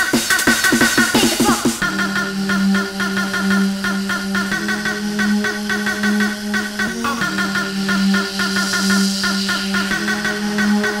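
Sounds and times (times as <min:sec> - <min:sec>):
fast synth riff: 0:00.0 - 0:11.0
sustained synth bass: 0:01.8 - 0:11.0.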